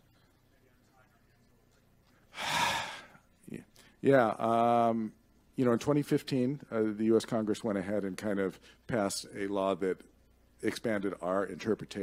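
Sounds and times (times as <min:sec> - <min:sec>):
man's quick intake of breath: 0:02.3 - 0:03.2.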